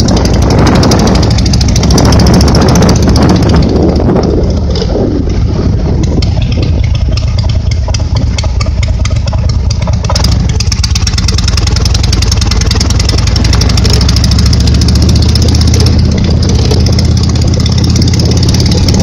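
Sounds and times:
motorcycle engine drone: 0.0 - 19.0
wind buffeting microphone: 0.0 - 19.0.

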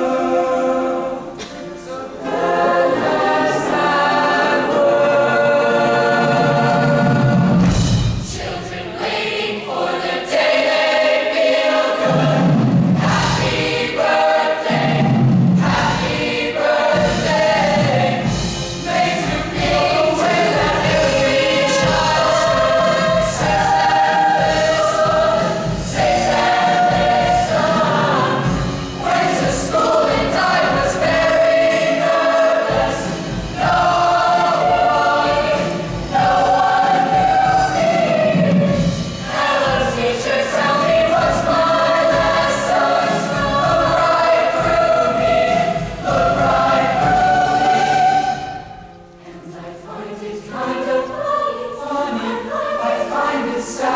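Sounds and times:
choir singing held chords: 0.0 - 53.9.

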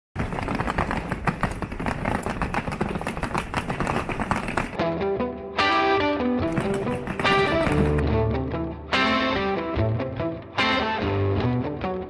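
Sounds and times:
suitcase wheels on cobblestones: 0.2 - 4.8, 6.5 - 8.0.

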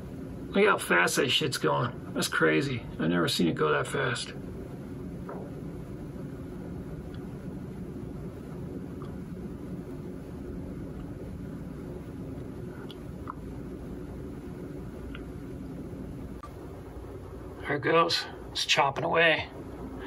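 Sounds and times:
computer fans whirring: 0.0 - 20.0.

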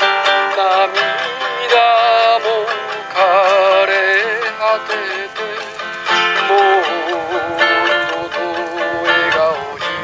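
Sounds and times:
acoustic guitar: 0.0 - 10.0
man singing a slow ballad: 0.0 - 10.0.

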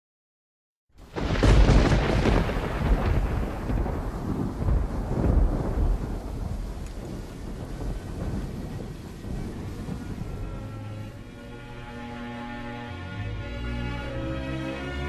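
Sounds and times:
deep rolling rumble: 1.1 - 15.0.

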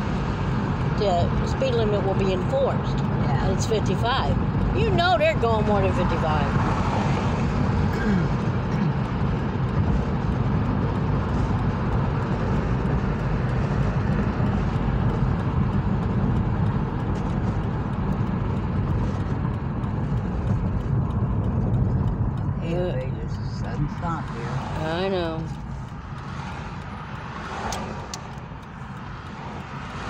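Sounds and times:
tyre and engine rumble: 0.0 - 30.0.

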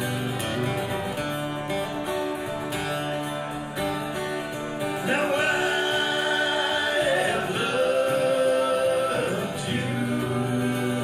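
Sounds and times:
men singing in harmony: 5.0 - 11.0.

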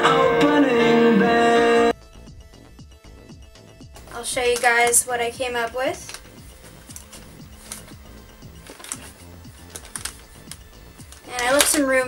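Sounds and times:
faint music: 4.0 - 12.0
hands handling portable speaker: 5.6 - 12.0.

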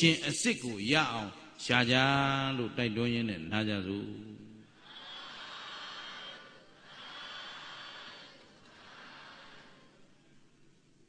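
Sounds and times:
audience murmuring: 4.8 - 10.3.

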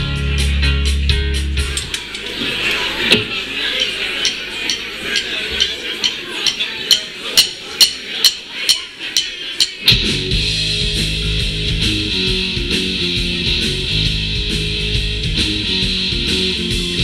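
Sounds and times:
bar crowd noise: 0.0 - 17.0
drum ticks: 4.2 - 10.2.

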